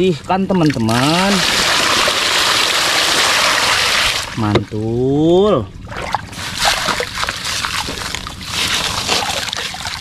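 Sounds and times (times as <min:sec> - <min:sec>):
hand splashing in muddy water: 0:05.9 - 0:10.0.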